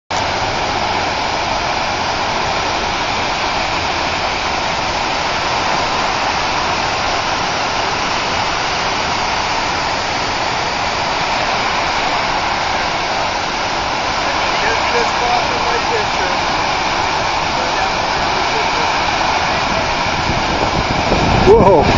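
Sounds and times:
loud rushing water: 0.1 - 21.9.

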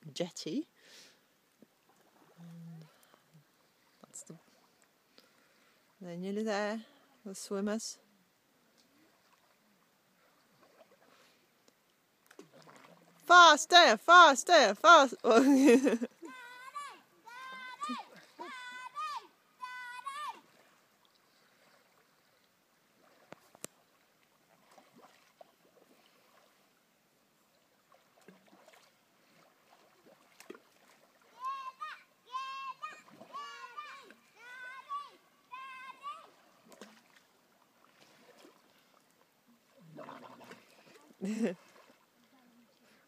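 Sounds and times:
child calling out: 16.2 - 20.4, 31.3 - 36.4.

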